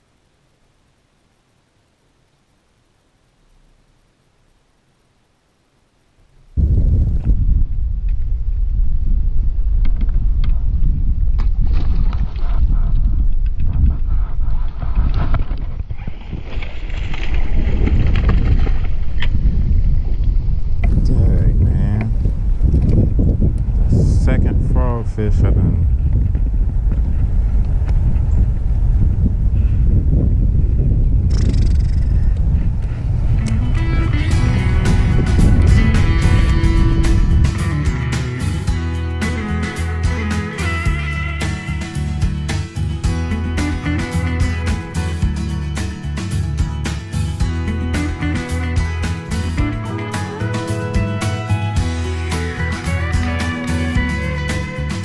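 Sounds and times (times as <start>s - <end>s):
wind buffeting microphone: 6.5s - 38.8s
music: 33.4s - 55.0s.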